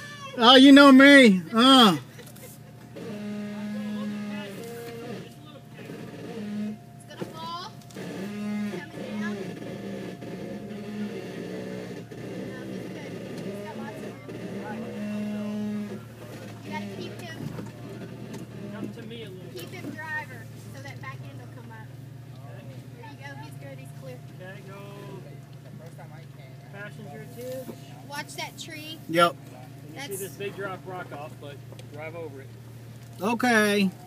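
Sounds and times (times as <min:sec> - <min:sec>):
distant voices talking: 0:00.0 - 0:34.0
vehicle engine running at low revs: 0:00.0 - 0:34.0.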